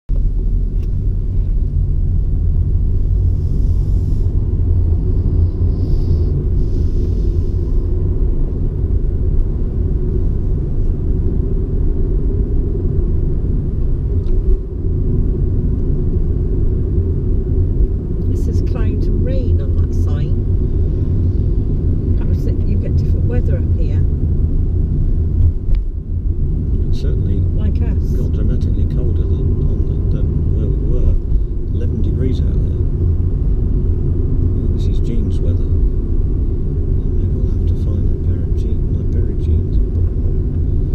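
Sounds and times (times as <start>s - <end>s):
car engine and tyre rumble: 0.1s - 40.9s
voices: 18.2s - 20.4s, 22.2s - 24.1s, 26.9s - 31.2s, 31.8s - 32.8s, 34.6s - 35.7s, 37.0s - 39.8s.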